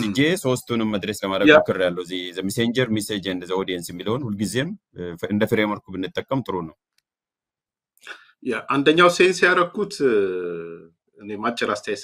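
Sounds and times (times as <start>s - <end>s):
man speaking in fragments: 0.0s - 6.7s, 8.4s - 12.0s.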